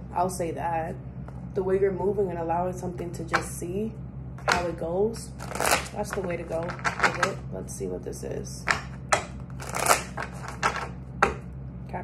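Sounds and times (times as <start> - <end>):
cards being shuffled: 5.3 - 7.4, 8.7 - 11.0.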